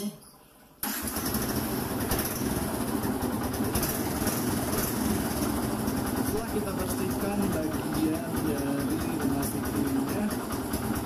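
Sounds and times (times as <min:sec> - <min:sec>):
motorcycle engine idling: 0:00.9 - 0:11.0.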